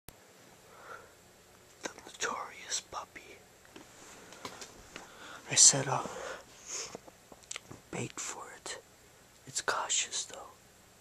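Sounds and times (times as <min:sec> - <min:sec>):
person whispering: 0:01.8 - 0:03.4, 0:05.4 - 0:06.9, 0:07.9 - 0:08.8, 0:09.5 - 0:10.6.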